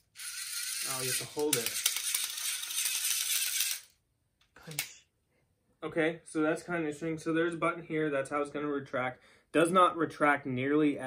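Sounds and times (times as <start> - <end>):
string retractor rattling whir: 0.0 - 3.9.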